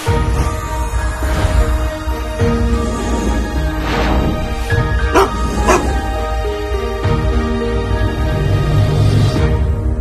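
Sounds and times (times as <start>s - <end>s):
dog barking: 5.1s - 6.0s.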